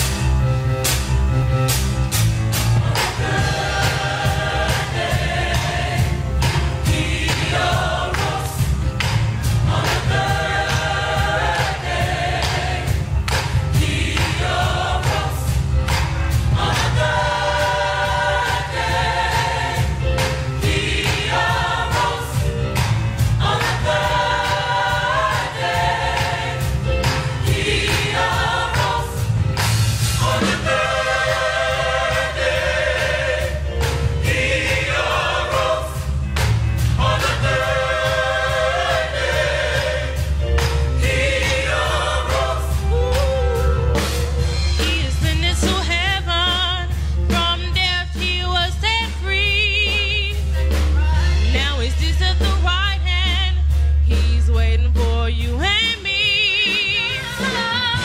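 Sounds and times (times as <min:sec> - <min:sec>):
percussion beats: 0:00.0 - 0:58.0
gospel choir singing: 0:02.2 - 0:47.5, 0:55.9 - 0:58.0
low bass line: 0:50.4 - 0:56.2.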